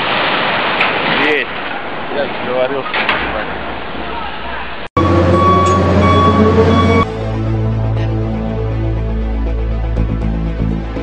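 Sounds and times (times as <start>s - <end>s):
crane machinery hum and whine: 5.0s - 7.1s.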